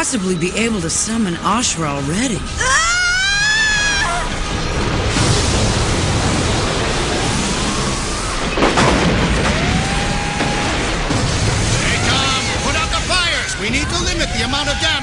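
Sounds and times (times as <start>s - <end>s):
heavy rumble: 0.0s - 15.0s
rising whines: 0.0s - 15.0s
sharp crack: 5.1s - 12.8s.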